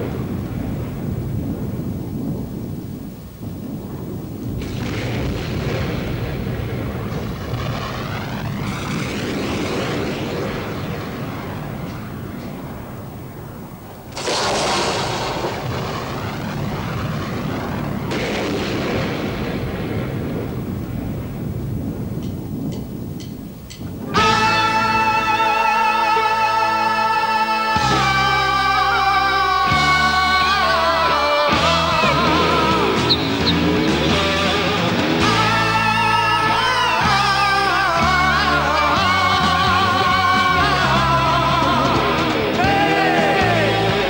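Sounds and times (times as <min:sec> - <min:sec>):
deep continuous rumble: 0:00.0 - 0:44.0
electronic rush sweeping down: 0:06.8 - 0:18.1, 0:31.5 - 0:36.7.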